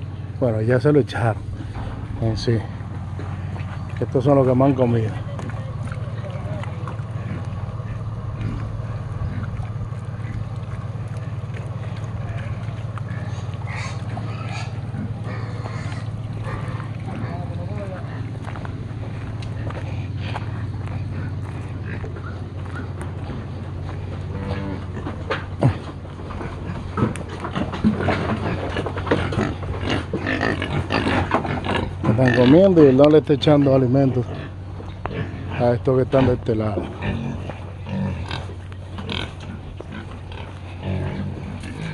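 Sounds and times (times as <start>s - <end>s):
pigs grunting and feeding: 0.0s - 41.9s
steady low hum: 0.0s - 41.9s.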